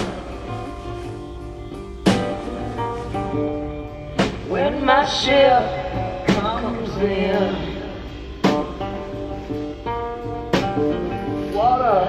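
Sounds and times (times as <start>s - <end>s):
person singing: 0.0s - 1.0s, 4.5s - 8.8s, 11.5s - 12.0s
blues-rock band playing: 0.0s - 12.0s
sharp drum hit: 2.0s - 3.3s.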